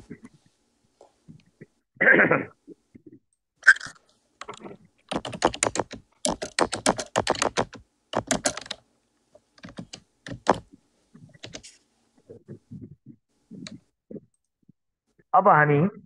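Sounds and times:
typing on computer keyboard: 4.4s - 8.8s, 9.6s - 10.7s, 11.4s - 11.7s.

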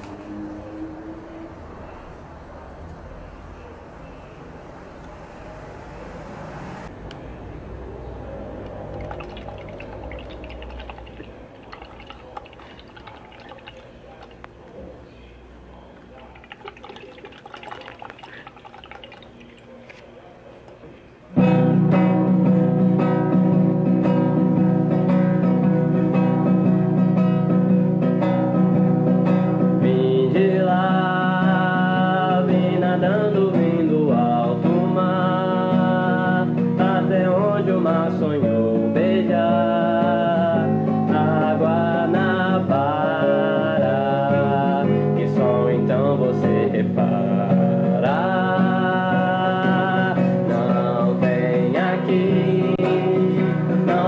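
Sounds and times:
acoustic guitar playing: 21.4s - 29.9s.

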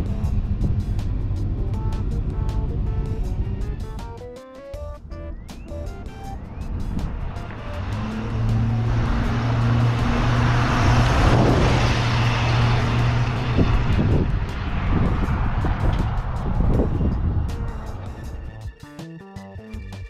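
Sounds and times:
pickup truck engine hum: 0.0s - 18.7s.

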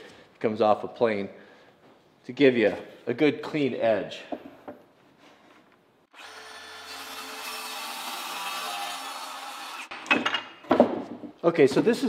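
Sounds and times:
circular saw cutting plywood: 6.1s - 9.9s.

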